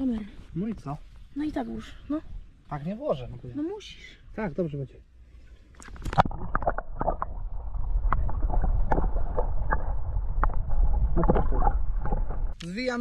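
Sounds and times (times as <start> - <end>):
muffled rumble of underwater water: 6.1 - 12.6.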